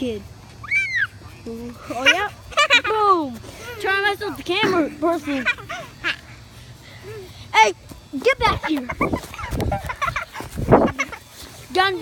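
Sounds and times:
children yelping and crying: 0:00.5 - 0:07.8, 0:08.4 - 0:11.6
rough scuffing: 0:07.6 - 0:12.0.

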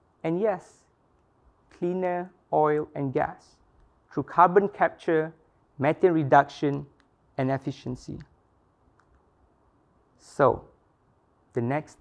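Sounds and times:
man speaking: 0:00.2 - 0:00.9, 0:01.7 - 0:08.3, 0:10.2 - 0:10.8, 0:11.5 - 0:12.0.

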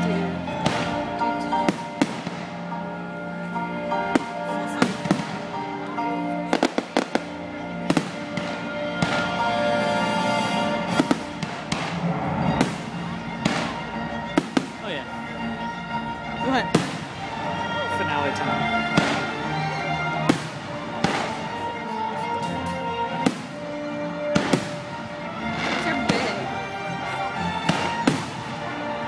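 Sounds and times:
band music: 0:00.0 - 0:29.0
fireworks bangs: 0:00.5 - 0:02.7, 0:04.0 - 0:15.2, 0:16.6 - 0:17.8, 0:18.4 - 0:19.5, 0:20.2 - 0:21.7, 0:23.2 - 0:26.5, 0:27.6 - 0:28.8.

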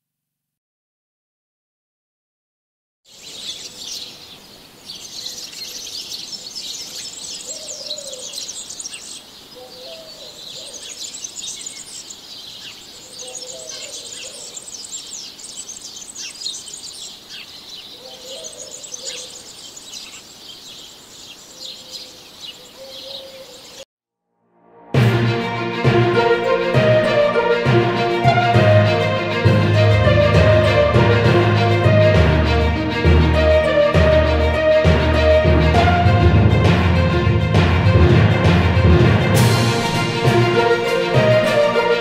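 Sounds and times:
low warbling bird calls: 0:03.1 - 0:23.8
birds chirping in chorus: 0:03.1 - 0:23.9.

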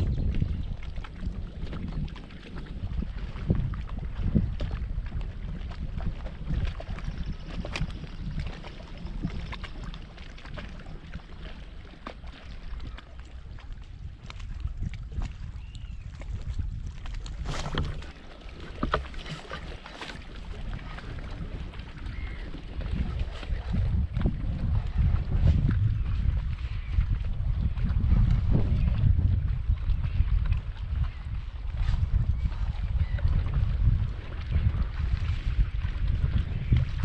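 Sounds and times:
water against float tube: 0:00.0 - 0:37.0
wind rumble on microphone: 0:00.0 - 0:37.0.

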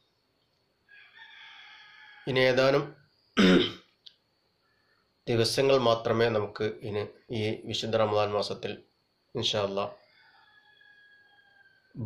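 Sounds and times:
man clearing throat: 0:03.4 - 0:03.9.

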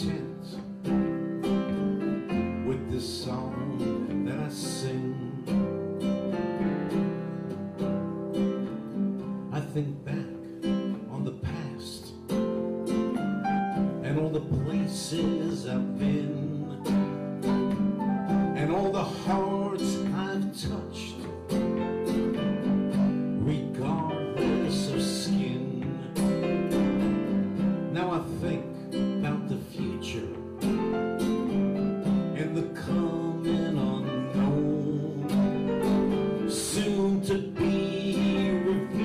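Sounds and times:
acoustic guitar strumming: 0:00.0 - 0:39.0
sustained keyboard chords: 0:00.0 - 0:39.0.

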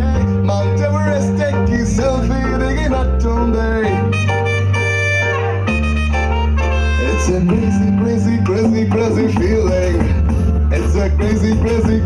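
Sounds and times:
loud music with bass line: 0:00.0 - 0:12.0.

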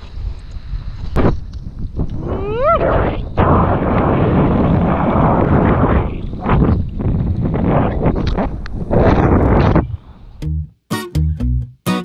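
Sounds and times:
wind buffeting microphone: 0:00.0 - 0:10.4.

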